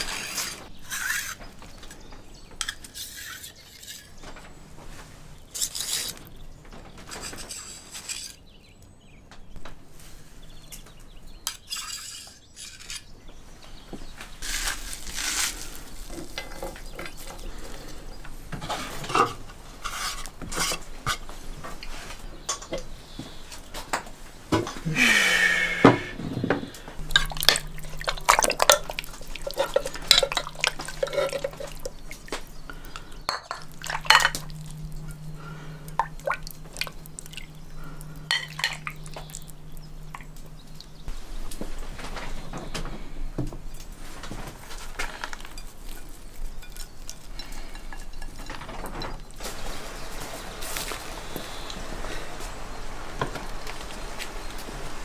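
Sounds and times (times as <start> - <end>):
low steady hum: 13.1 - 55.0
liquid dripping: 27.0 - 41.1.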